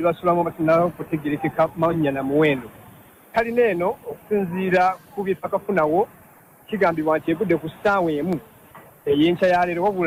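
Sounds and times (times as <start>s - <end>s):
person speaking news narration: 0.0s - 10.0s.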